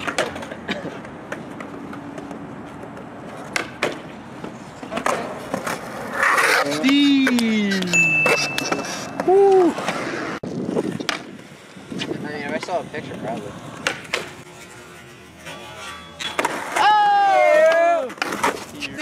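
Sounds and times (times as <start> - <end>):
skateboard clacks: 0.0 - 10.1, 12.0 - 14.5, 15.4 - 19.0
skateboard wheels rolling on concrete: 0.0 - 19.0.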